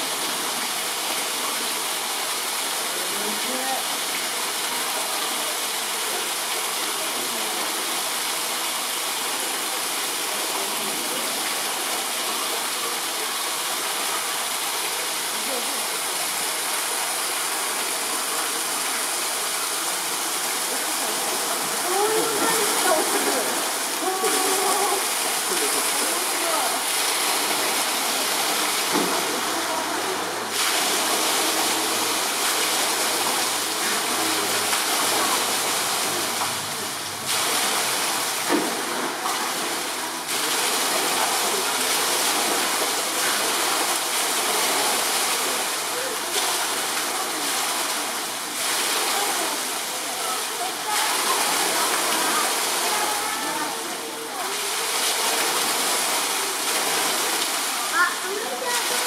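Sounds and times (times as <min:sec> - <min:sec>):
running water rushing: 0:00.0 - 0:59.0.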